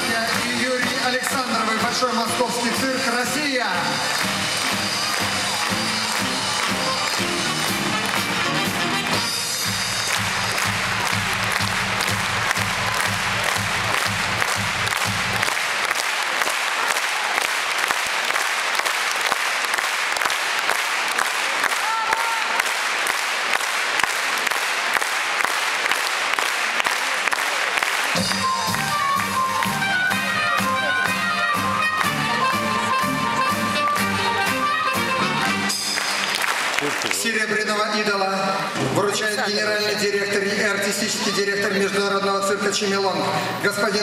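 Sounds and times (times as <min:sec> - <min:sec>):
band music: 0:00.0 - 0:15.6, 0:28.1 - 0:37.0
audience applauding: 0:00.0 - 0:39.2.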